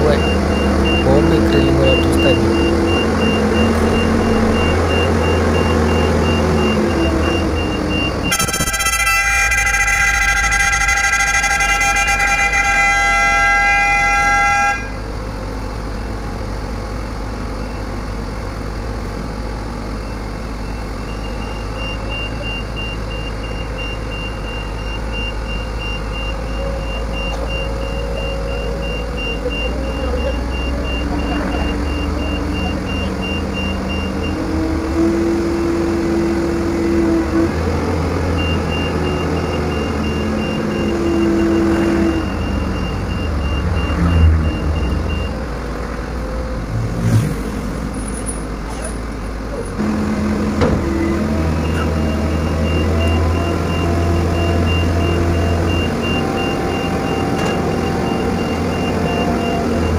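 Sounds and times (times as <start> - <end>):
rapid high-pitched warning beep: 0.0 - 9.1, 20.0 - 34.4, 38.4 - 45.4, 51.5 - 59.9
heavy diesel engines running: 0.0 - 59.9
long steady horn blast: 8.2 - 15.1, 33.8 - 42.4.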